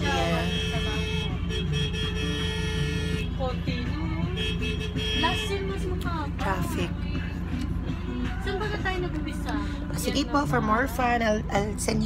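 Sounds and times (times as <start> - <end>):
people talking: 0.0 - 1.2, 5.2 - 7.1, 8.5 - 12.0
bus engine rumble: 0.0 - 12.0.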